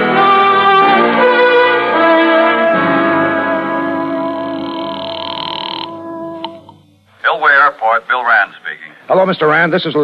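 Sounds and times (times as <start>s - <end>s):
brass music chord: 0.0s - 5.3s, 5.9s - 6.7s.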